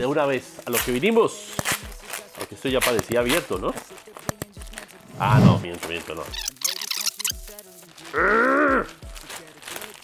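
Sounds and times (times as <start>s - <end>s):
plastic bag crinkling: 8.9s - 10.0s.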